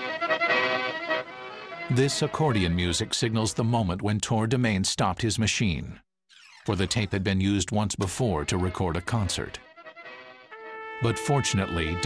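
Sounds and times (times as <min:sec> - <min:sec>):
accordion chords from tape: 0:00.0 - 0:03.0.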